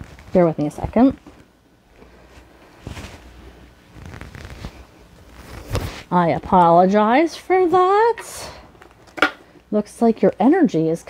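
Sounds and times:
rustling and shuffling: 0.0 - 6.8.

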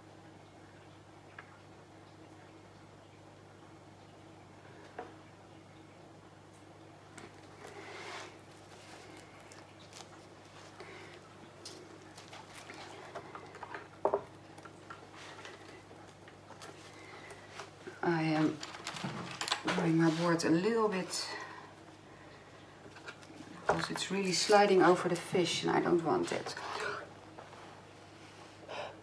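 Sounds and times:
steady low hum: 0.0 - 29.0
faint clicks and handling noises: 8.5 - 20.0
person speaking: 17.9 - 18.8, 19.6 - 21.6, 23.6 - 27.0.

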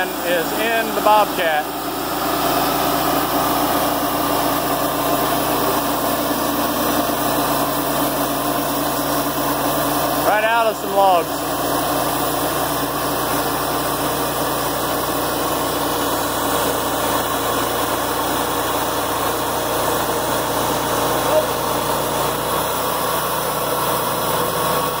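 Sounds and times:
band blade sawing log: 0.0 - 25.0
gasoline engine running steadily: 0.0 - 25.0.

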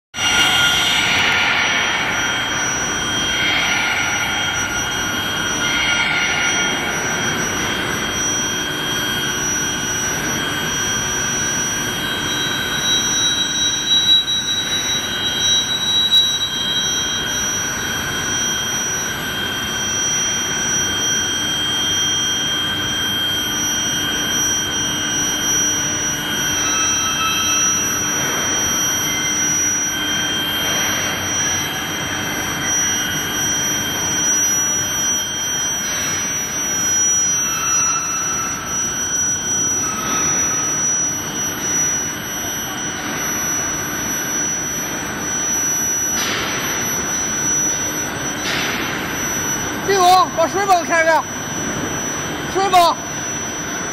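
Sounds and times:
high-pitched induction heater whine: 0.2 - 53.9.

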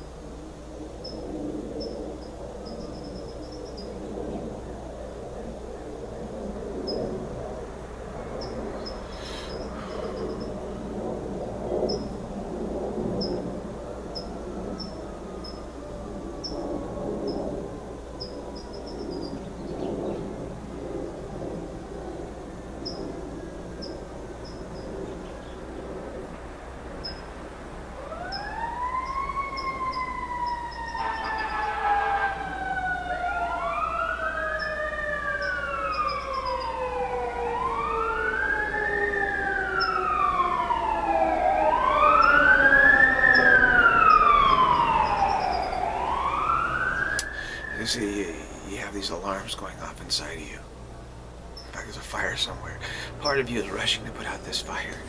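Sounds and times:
emergency vehicle siren wailing: 0.0 - 50.6, 51.7 - 55.0.

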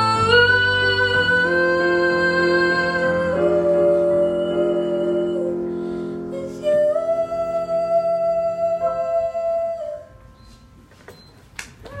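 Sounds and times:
person singing with digital piano: 0.0 - 10.3.

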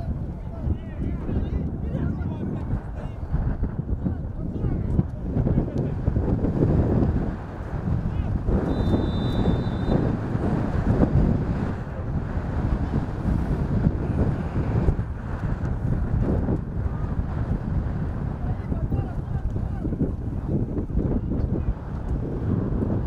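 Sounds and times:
wind buffeting microphone: 0.0 - 23.0
short high whistle: 8.7 - 10.0.

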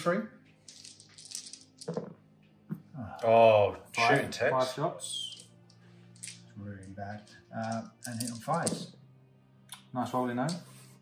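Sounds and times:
dice rattling and rolling: 0.6 - 2.1, 5.2 - 6.5, 7.2 - 8.9.

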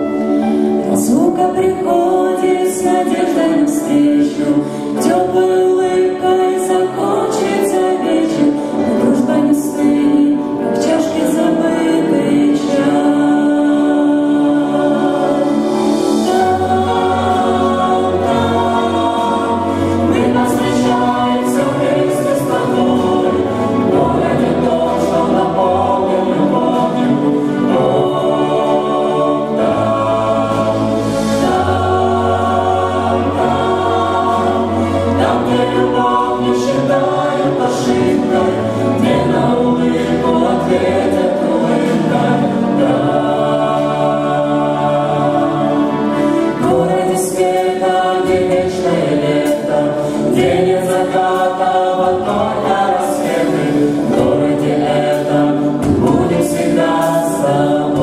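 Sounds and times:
mixed choir singing in harmony: 0.0 - 58.0.

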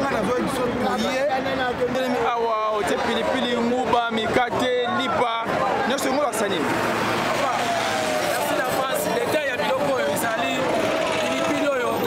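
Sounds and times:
crowd noise: 0.0 - 12.0
street traffic: 0.0 - 12.0.

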